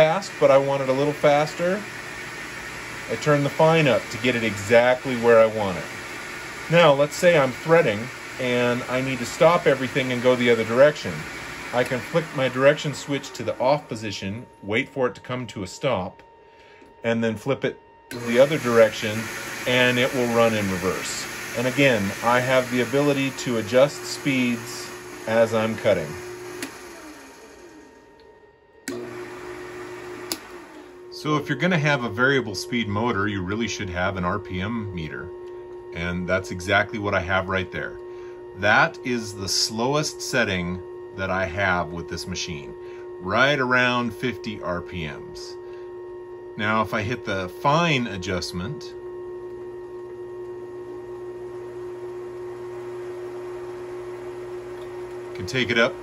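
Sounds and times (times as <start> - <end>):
electric motor hum: 0.0 - 15.1, 18.1 - 56.0.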